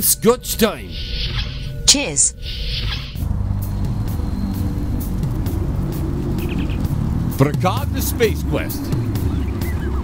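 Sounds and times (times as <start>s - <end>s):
music: 0.0s - 10.0s
deep rumbling drone: 2.4s - 10.0s.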